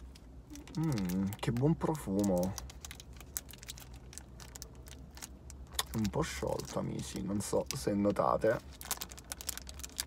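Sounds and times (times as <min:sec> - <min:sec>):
wrapper crinkling: 0:00.0 - 0:10.0.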